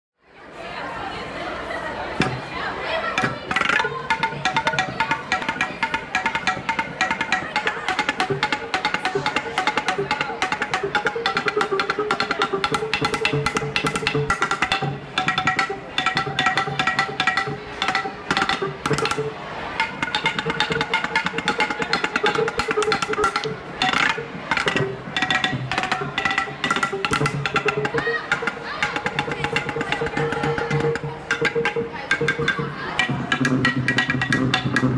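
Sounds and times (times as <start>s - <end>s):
mallets striking wooden bats: 3.2s - 34.9s.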